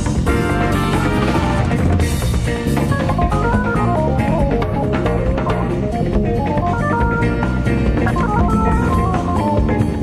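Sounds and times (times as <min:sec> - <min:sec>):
jazz-fusion band playing: 0:00.1 - 0:10.0.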